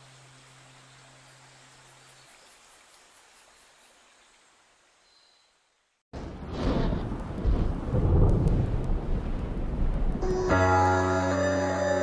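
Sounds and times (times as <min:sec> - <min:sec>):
deep rumble: 0:06.2 - 0:10.3.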